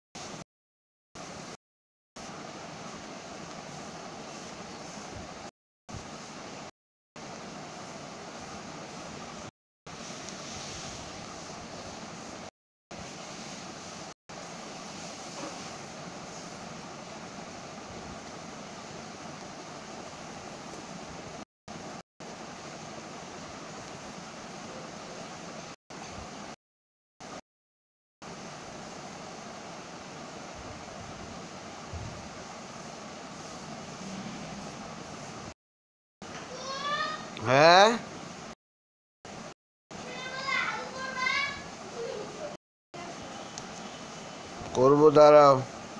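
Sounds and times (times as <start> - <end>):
recording hiss: 1.2 - 1.6, 2.2 - 26.6, 28.2 - 35.6, 36.2 - 38.6, 39.3 - 45.9.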